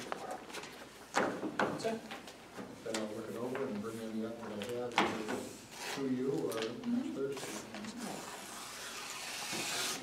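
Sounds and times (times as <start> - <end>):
paper rubbing on wooden desk: 7.4 - 10.0.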